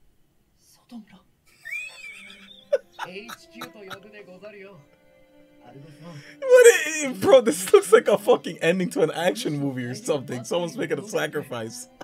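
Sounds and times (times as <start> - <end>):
man saying a word: 6.4 - 11.9.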